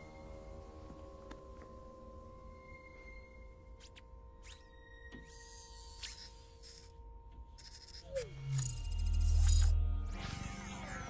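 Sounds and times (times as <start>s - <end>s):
film score drone: 0.0s - 11.0s.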